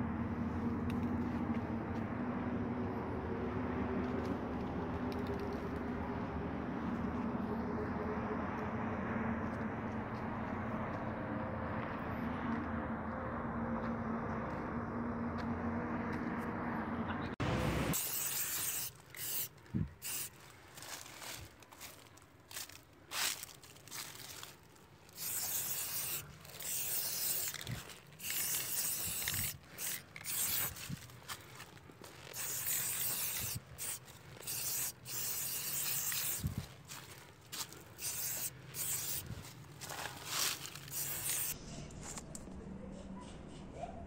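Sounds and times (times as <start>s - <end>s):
spray-paint can hissing: 17.9s - 20.4s, 25.1s - 31.0s, 32.2s - 36.6s, 38.0s - 39.4s, 40.5s - 41.6s.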